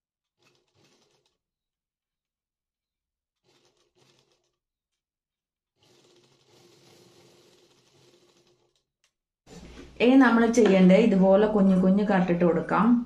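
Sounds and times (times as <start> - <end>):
sewing machine running: 0.2 - 1.5, 3.3 - 4.6, 5.7 - 8.9.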